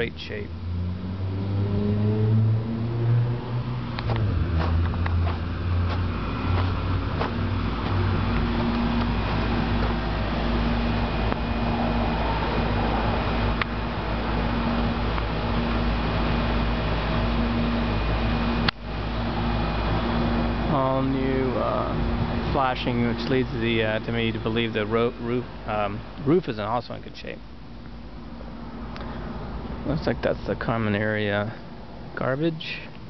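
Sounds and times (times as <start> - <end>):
air conditioner units humming: 0.0 - 1.2, 3.8 - 33.0.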